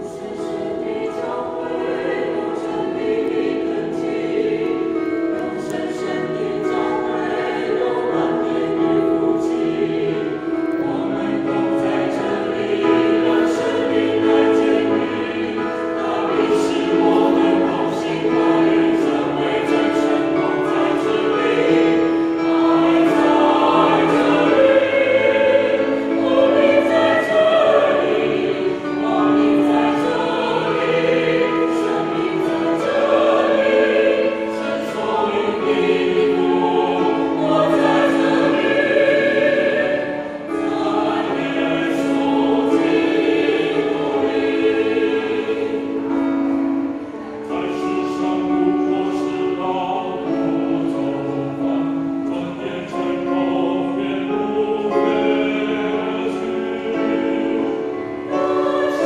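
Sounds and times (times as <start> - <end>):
mixed choir singing a hymn: 0.0 - 59.0.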